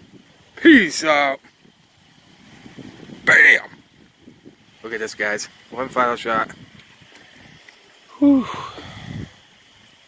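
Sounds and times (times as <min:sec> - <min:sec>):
stormy night background noise: 0:00.0 - 0:10.0
brief vocal exclamation: 0:08.1 - 0:08.8.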